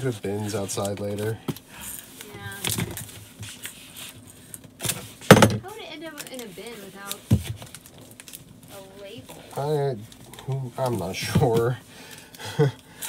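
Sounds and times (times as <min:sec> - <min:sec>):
packing tape ripping: 0:06.0 - 0:08.6.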